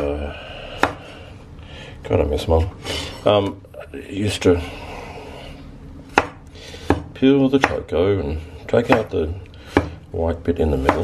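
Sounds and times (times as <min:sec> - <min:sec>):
knife slicing vegetable on board: 0:09.7 - 0:10.0.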